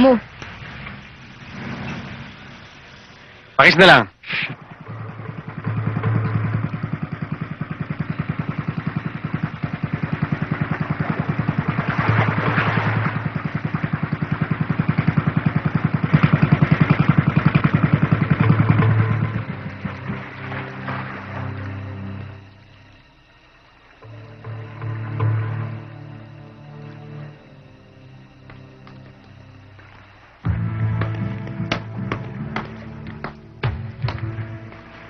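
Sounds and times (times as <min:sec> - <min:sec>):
engine running with rapid pulse: 0:04.6 - 0:23.0, 0:24.0 - 0:35.0.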